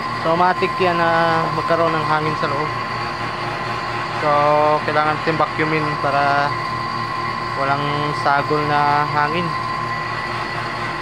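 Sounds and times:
vacuum pump humming and whining: 0:00.0 - 0:11.0.

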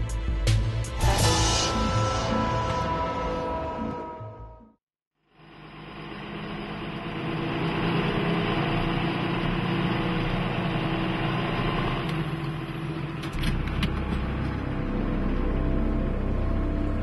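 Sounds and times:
diesel engine idling: 0:05.3 - 0:17.0.

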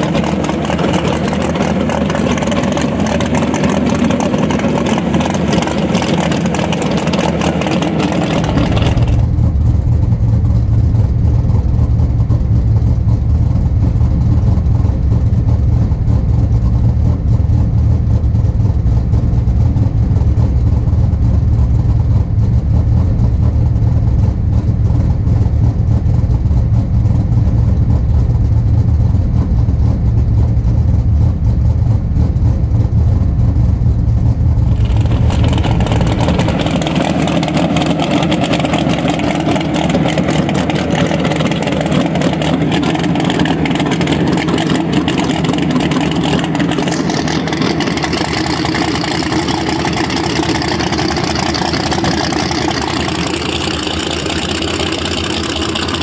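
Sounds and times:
drag car engine running: 0:00.0 - 0:56.0.

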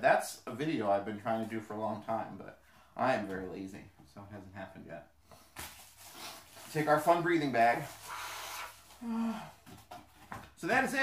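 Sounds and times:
person breathing out into bag: 0:08.0 - 0:09.6.

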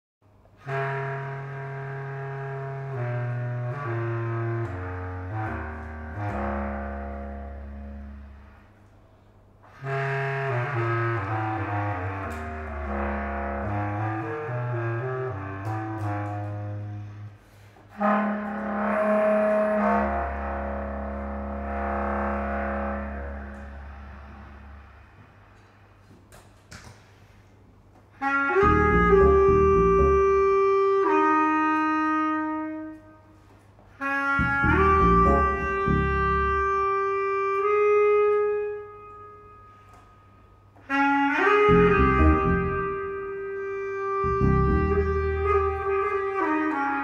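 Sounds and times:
bass clarinet: 0:00.6 - 0:25.8, 0:28.2 - 0:47.0
electric bass: 0:10.4 - 0:17.0, 0:18.4 - 0:25.1, 0:28.5 - 0:31.4, 0:34.4 - 0:37.2, 0:41.5 - 0:46.8
electric bass note: 0:28.6 - 0:30.6, 0:34.4 - 0:36.9, 0:41.7 - 0:43.2, 0:44.1 - 0:45.9.

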